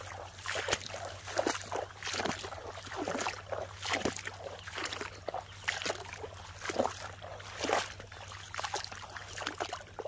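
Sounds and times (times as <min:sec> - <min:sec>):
footsteps wading through water: 0:00.0 - 0:10.0.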